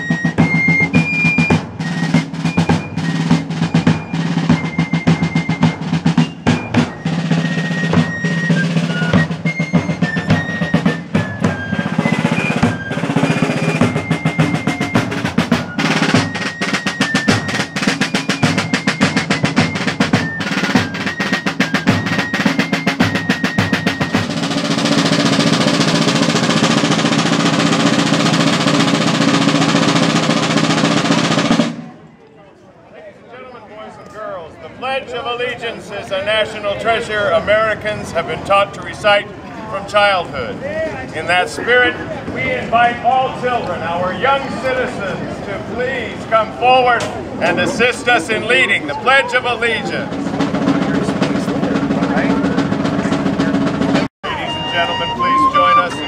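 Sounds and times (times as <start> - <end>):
snare and bass drum roll: 0.0 - 32.0, 47.0 - 54.1.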